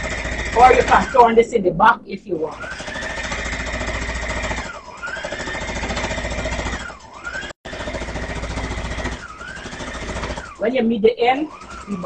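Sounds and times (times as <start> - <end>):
sewing machine stitching: 0.0 - 1.5, 2.4 - 12.0.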